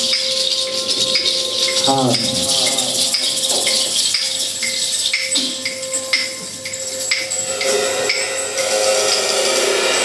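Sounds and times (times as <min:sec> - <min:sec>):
cymbals: 0:00.0 - 0:10.0
jingling shaker percussion: 0:00.0 - 0:10.0.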